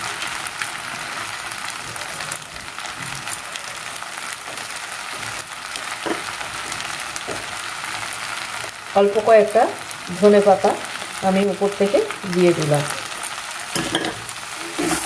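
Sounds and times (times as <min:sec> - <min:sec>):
food sizzling in a wok: 0:00.0 - 0:15.0.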